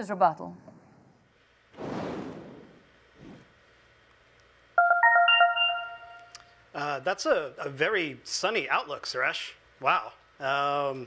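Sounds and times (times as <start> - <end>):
electronic chime: 4.8 - 6.4.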